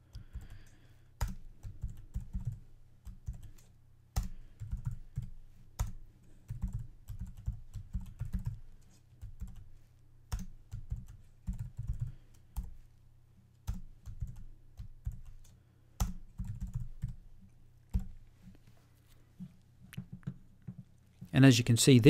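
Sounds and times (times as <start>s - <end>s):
typing on computer keyboard: 0.0s - 9.7s, 10.3s - 12.8s, 13.6s - 17.2s.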